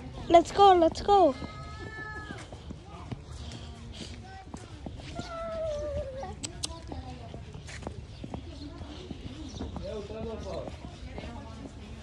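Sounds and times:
children chattering: 0.0s - 12.0s
child's high drawn-out call: 1.2s - 2.5s, 5.0s - 6.4s.

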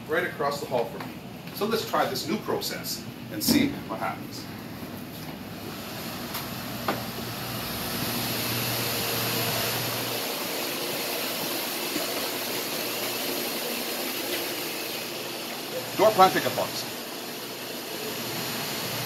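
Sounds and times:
ventilation and machinery hum: 0.0s - 19.0s.

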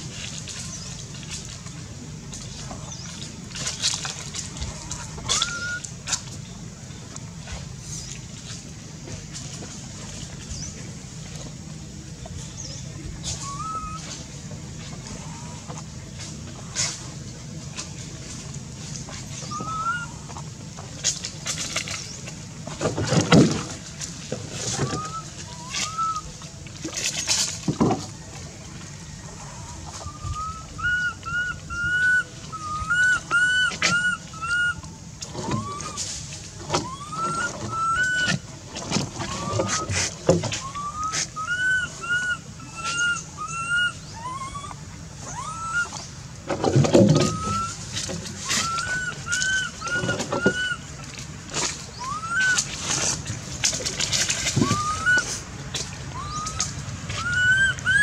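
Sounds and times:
baby macaque whimpering coos: 5.2s - 5.8s, 13.4s - 14.1s, 19.6s - 20.2s, 30.0s - 34.8s, 35.5s - 36.0s, 36.8s - 38.4s, 40.6s - 46.0s, 47.2s - 47.8s, 48.4s - 50.8s, 52.0s - 52.6s, 54.6s - 55.3s, 56.2s - 58.0s.

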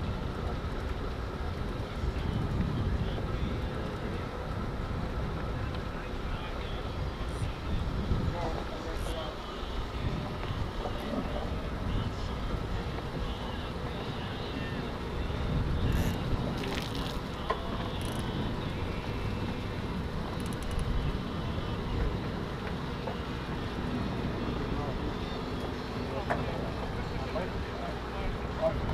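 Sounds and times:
wind buffeting microphone: 0.0s - 28.9s
faint voices: 0.3s - 28.9s.

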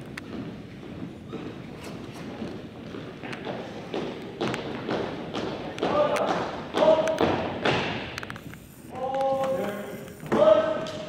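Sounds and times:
shouted drill commands: 8.9s - 11.0s.

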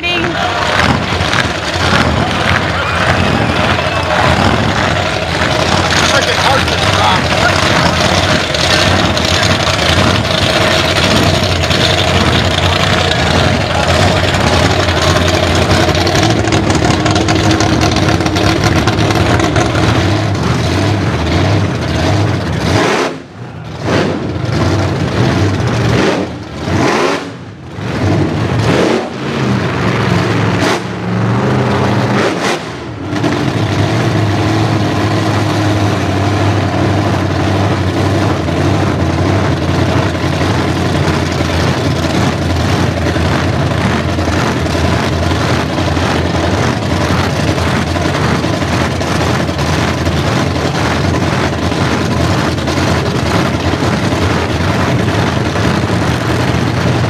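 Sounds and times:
drag racing engines revving: 0.0s - 57.0s.

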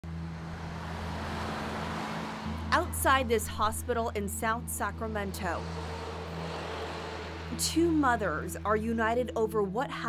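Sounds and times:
cars driving past: 0.0s - 9.0s.

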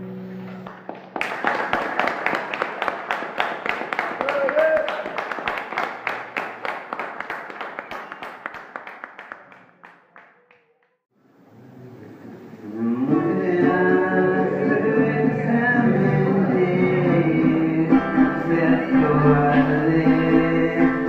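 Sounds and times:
audience applauding: 0.4s - 10.8s.

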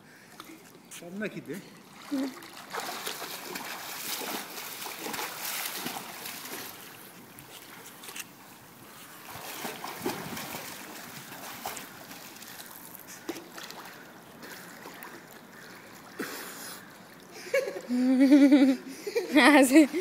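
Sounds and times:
pool water splashing: 0.0s - 20.0s.

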